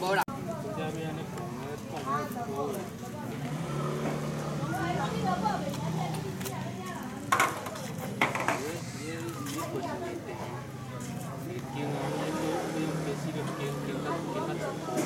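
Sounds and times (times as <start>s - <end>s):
chatter of people talking: 0.0s - 15.0s.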